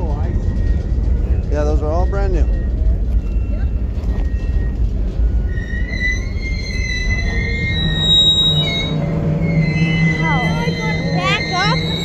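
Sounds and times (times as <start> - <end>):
high wheel squeal: 0.0 - 12.0
train wheels rumbling on rail: 0.0 - 12.0.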